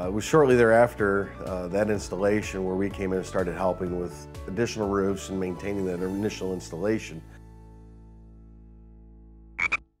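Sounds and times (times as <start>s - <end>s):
cartoon frog croak: 9.6s - 9.8s.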